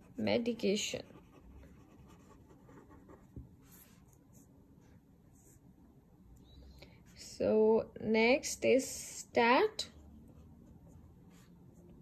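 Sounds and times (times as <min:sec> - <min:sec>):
pen scratching on paper: 0:00.0 - 0:04.4.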